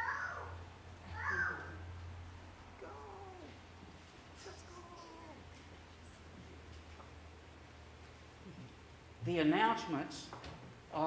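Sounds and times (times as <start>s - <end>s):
faint high gliding calls: 0.0s - 1.9s
steady low hum: 0.0s - 11.0s.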